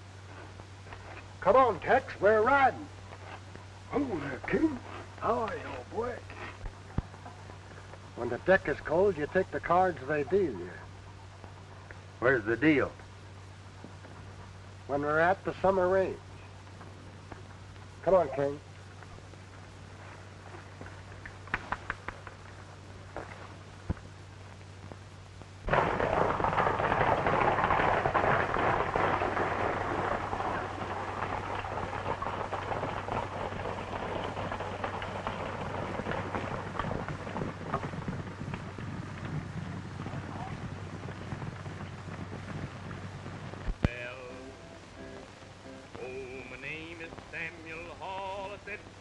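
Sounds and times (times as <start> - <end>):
horses galloping: 0.0 - 49.0
steady low hum: 0.0 - 49.0
faint clicks: 20.8 - 22.6.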